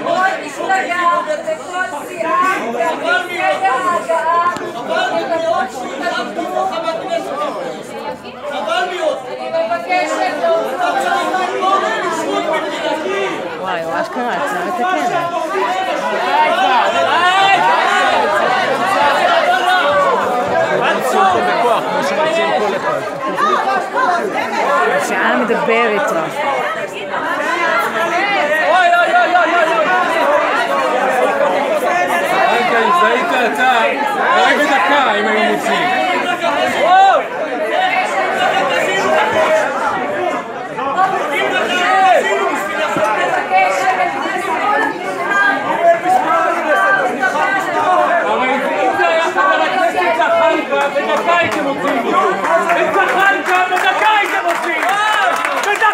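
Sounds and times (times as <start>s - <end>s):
overlapping voices: 0.0s - 55.9s.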